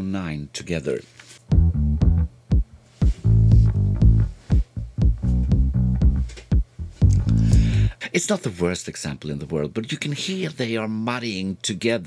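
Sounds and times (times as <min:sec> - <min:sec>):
drum machine hits: 0:01.5 - 0:07.8
electric bass line: 0:01.5 - 0:08.0.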